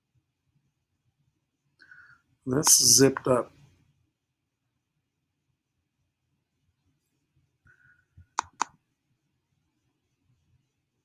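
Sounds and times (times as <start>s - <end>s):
mouse double-click: 8.3s - 8.8s.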